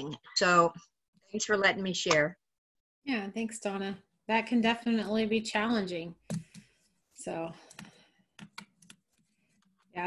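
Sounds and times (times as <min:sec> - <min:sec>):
faint keyboard typing: 0:07.6 - 0:09.9.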